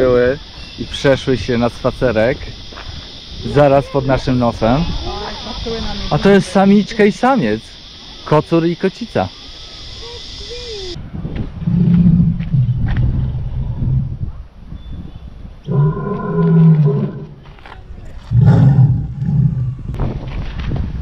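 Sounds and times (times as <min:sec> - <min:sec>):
deep lion-like roars: 0:11.6 - 0:14.0, 0:15.6 - 0:17.4, 0:18.2 - 0:20.0.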